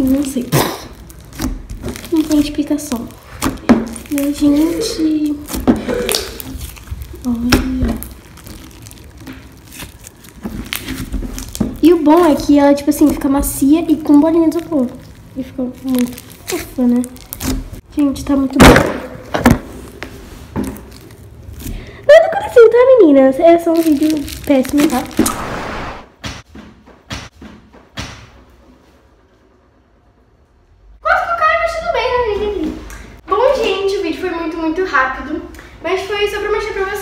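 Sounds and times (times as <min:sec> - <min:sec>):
slime squishing: 0:00.0 - 0:22.0, 0:23.3 - 0:26.0.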